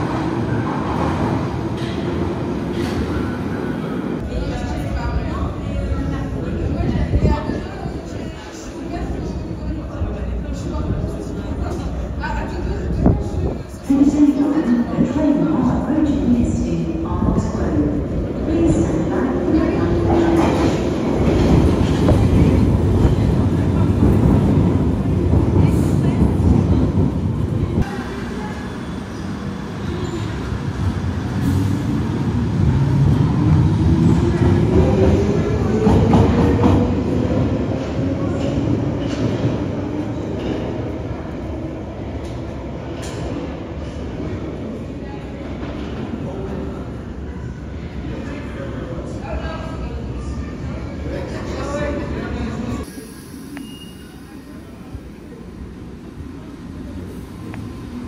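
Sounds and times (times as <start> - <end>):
underground train rumbling: 0.0 - 58.0.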